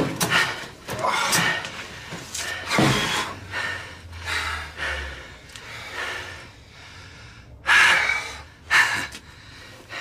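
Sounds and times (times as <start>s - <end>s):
man breathing heavily: 0.0s - 10.0s.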